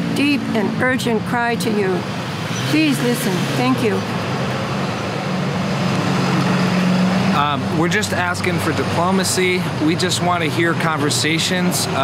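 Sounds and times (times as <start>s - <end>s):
traffic noise: 0.0s - 12.0s
vehicle engine droning: 0.0s - 12.0s.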